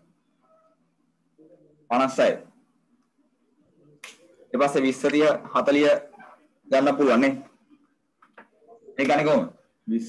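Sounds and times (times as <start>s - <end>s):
man speaking: 4.3s - 7.6s, 8.7s - 10.0s.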